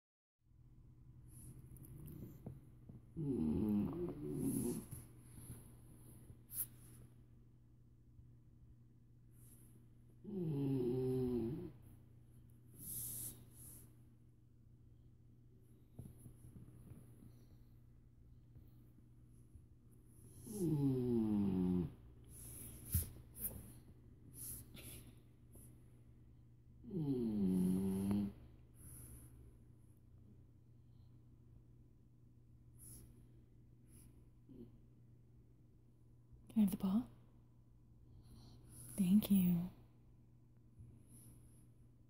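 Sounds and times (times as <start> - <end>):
dog snoring: 1.3 - 5.6, 10.2 - 11.9, 20.2 - 23.6, 26.8 - 29.2.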